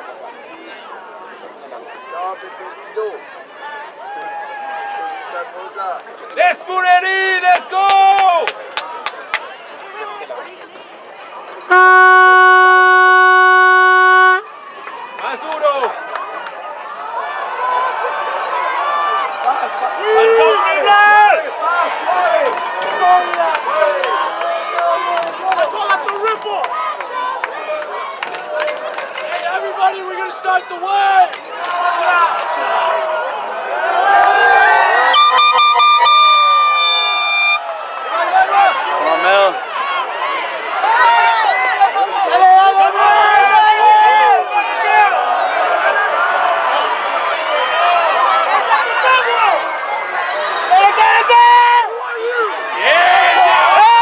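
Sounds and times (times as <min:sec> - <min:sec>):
loud horn blast: 0:11.7 - 0:14.4, 0:35.2 - 0:37.6.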